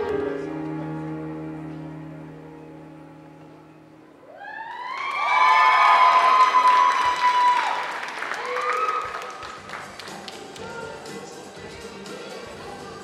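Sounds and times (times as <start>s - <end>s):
high-pitched screams and whoops: 4.2s - 9.3s
audience clapping: 4.7s - 10.7s.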